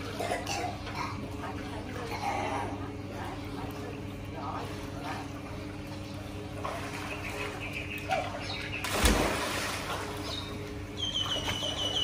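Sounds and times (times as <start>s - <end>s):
splash into swimming pool: 8.8s - 10.2s
bird trilling: 10.2s - 12.0s.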